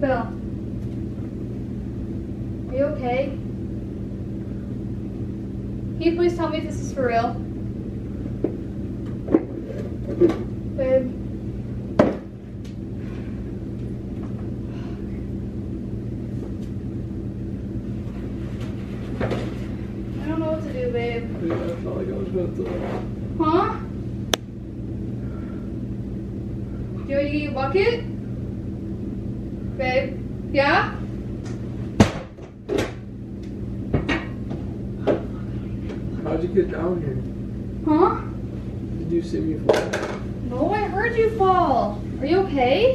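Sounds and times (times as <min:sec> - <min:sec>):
steady low hum: 0:00.0 - 0:42.9.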